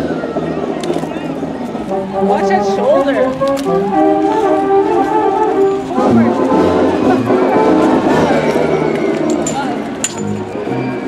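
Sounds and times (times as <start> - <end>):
people talking: 0.0 - 10.0
marching band brass playing: 1.3 - 11.0.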